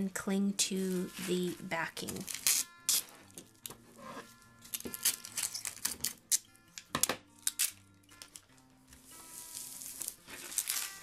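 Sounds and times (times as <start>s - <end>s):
faint acoustic guitar music: 0.0s - 11.0s.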